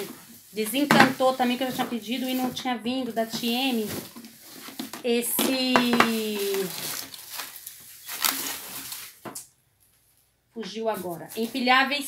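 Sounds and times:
plastic wrapping crinkling: 0.0 - 9.4.

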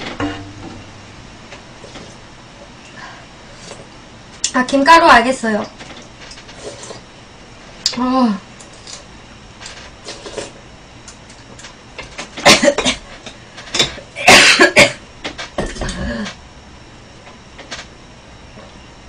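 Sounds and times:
woman coughing: 12.4 - 13.1, 14.2 - 15.0.

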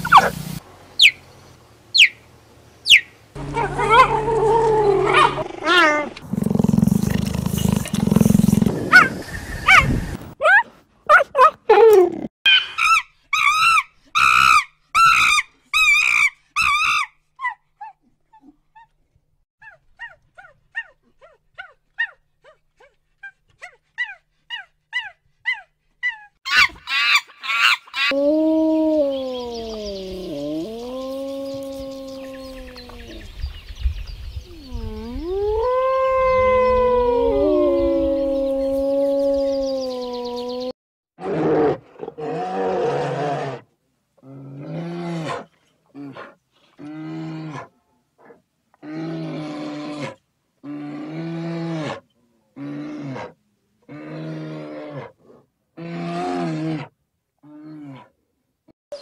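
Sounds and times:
high-pitched chirping calls: 1.0 - 1.2, 1.9 - 2.2, 2.8 - 4.2
wavering howl-like animal calls: 3.4 - 6.1, 28.0 - 33.3, 34.5 - 40.7.

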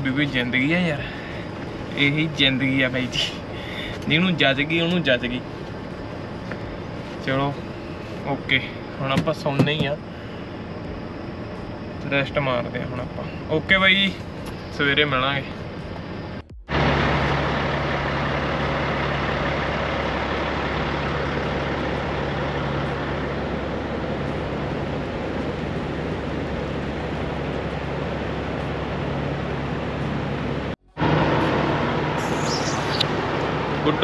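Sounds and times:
truck engine idling: 0.0 - 34.0.

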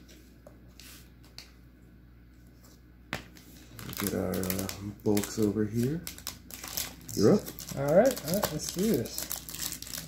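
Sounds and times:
cards rustling: 3.4 - 10.0.

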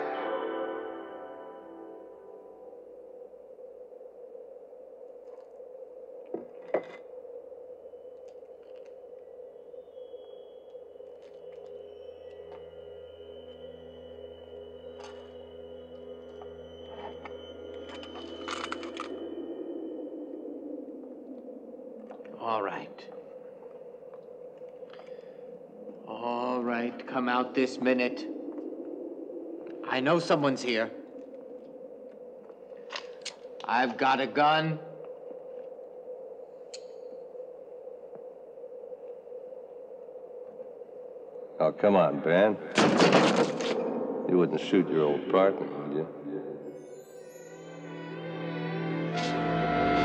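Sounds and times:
faint steady held tone: 0.0 - 42.7, 43.8 - 48.6
eerie suspense drone: 0.0 - 50.0.

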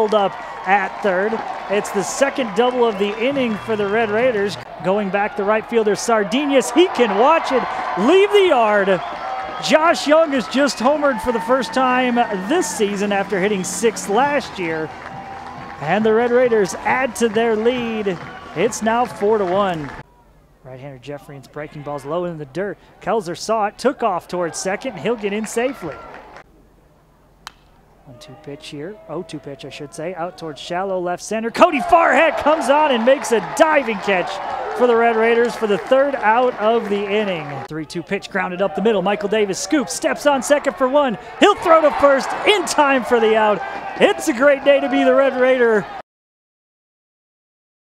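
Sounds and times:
outdoor ballpark background: 0.0 - 46.0.

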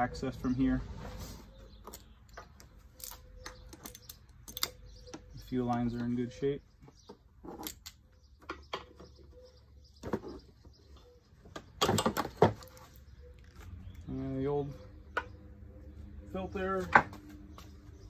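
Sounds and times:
tools and plastic parts clattering: 1.8 - 6.1, 6.9 - 9.4, 10.0 - 13.7.

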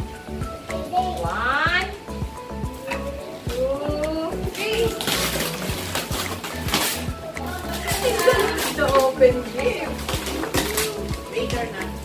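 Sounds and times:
background music with steady beat: 0.0 - 12.0
wrapping paper tearing and crumpling: 4.5 - 11.6.

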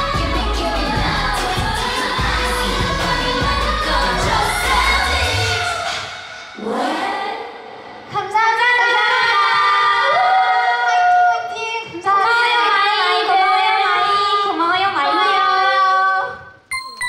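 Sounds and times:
dance-pop backing track: 0.0 - 7.6
women singing into microphones: 0.0 - 16.6.

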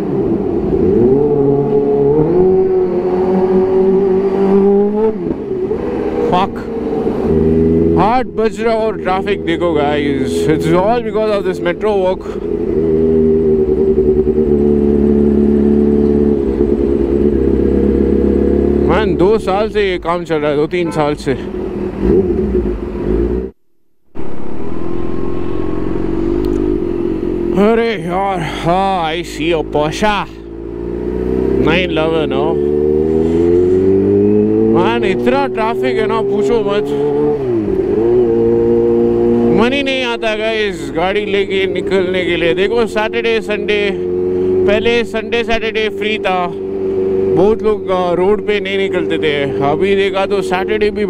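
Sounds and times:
motorcycle engine revving: 0.0 - 51.0.

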